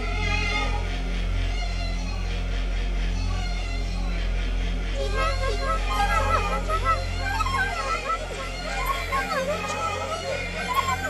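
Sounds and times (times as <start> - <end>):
low electronic drone: 0.0 - 11.0
layered higher tones: 5.0 - 11.0.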